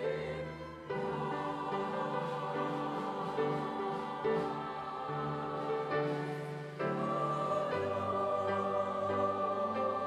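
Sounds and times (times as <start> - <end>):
church choir singing: 0.0 - 10.0
string orchestra playing: 0.0 - 10.0.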